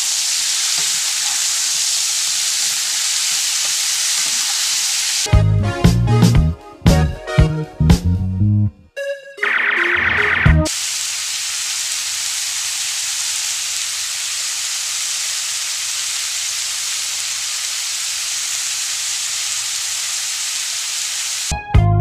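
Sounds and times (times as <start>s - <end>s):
beans sizzling in a pan: 0.0s - 5.3s, 10.7s - 21.5s
background music: 5.3s - 10.7s, 21.5s - 22.0s.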